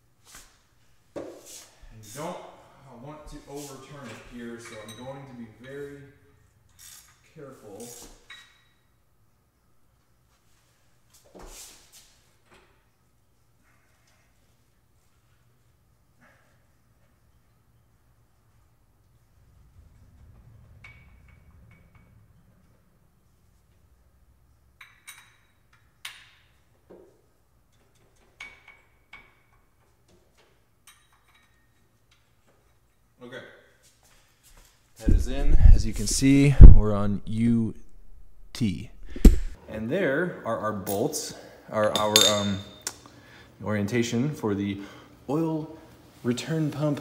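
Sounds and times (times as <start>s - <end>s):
engine thump: 38.0s - 39.6s.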